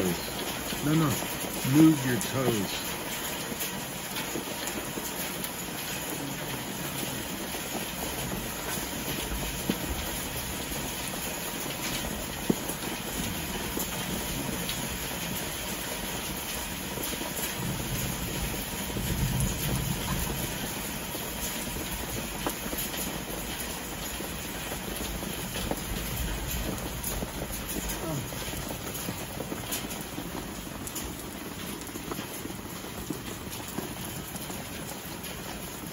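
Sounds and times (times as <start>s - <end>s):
steady rain falling: 0.0s - 35.9s.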